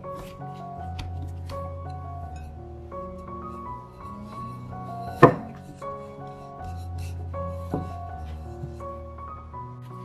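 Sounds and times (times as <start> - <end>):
rolling dough: 0.0 - 10.0
soft background music: 0.0 - 10.0
rolling pin knocking on surface: 5.1 - 5.7, 7.7 - 8.8.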